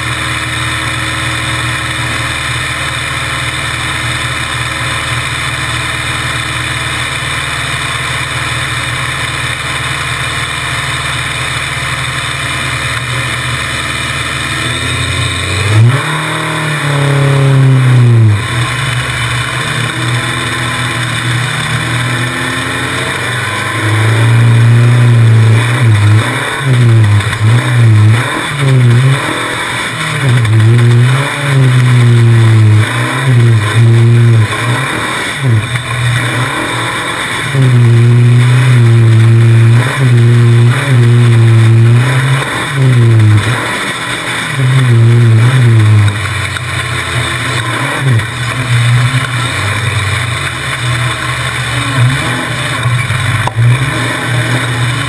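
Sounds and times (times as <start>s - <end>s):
buggy engine idling and revving: 0.0s - 55.0s.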